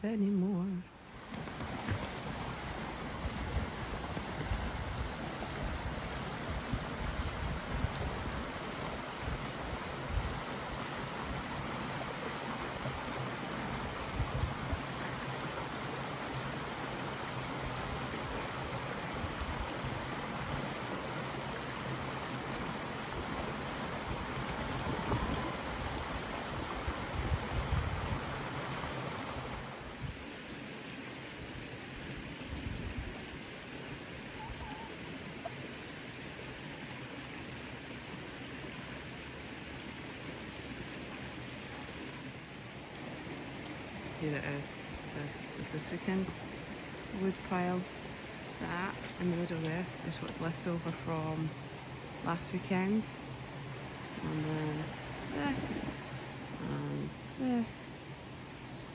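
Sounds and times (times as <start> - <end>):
stream rushing over stones: 1.0 - 58.9.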